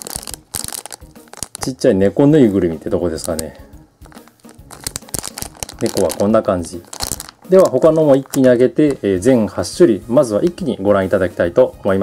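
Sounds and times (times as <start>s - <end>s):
plastic bags crinkling: 0.0s - 1.8s, 3.2s - 3.5s, 4.1s - 8.7s.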